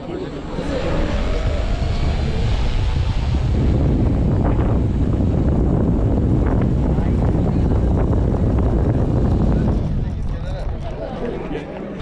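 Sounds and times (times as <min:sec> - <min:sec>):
wind buffeting microphone: 0:00.0 - 0:11.6.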